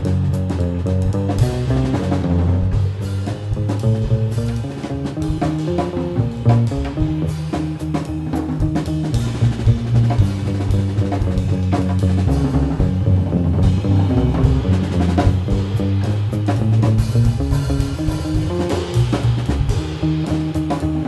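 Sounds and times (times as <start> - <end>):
double bass line: 0.0 - 21.0
drum kit: 0.0 - 21.0
electric guitar: 0.0 - 21.0.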